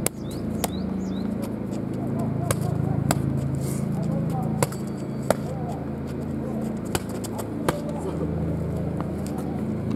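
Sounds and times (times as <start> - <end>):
steady low hum: 0.0 - 9.9
boxing gloves smacking mitts: 6.7 - 8.0.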